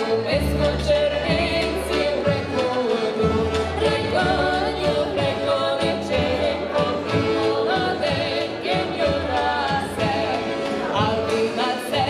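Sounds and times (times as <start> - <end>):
accordion: 0.0 - 12.0
acoustic guitar: 0.0 - 12.0
fiddle: 0.0 - 12.0
plucked double bass: 0.0 - 12.0
women singing together: 0.0 - 12.0.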